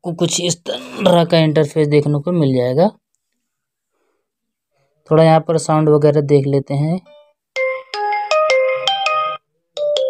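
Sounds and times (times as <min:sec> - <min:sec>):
smartphone ringtone melody: 0:07.1 - 0:10.0.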